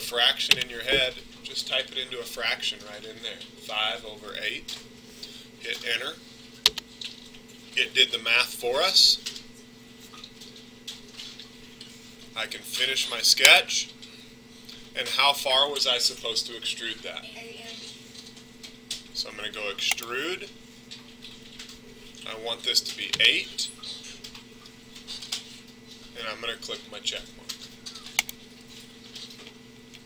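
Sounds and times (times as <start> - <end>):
low steady hum: 0.0 - 30.0
keyboard and mouse clicks: 6.6 - 6.9.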